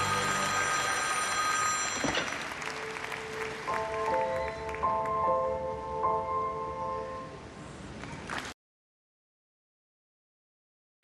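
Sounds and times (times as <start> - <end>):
crowd applauding: 0.0 - 5.3, 8.0 - 8.6
chiming melody: 0.0 - 7.3.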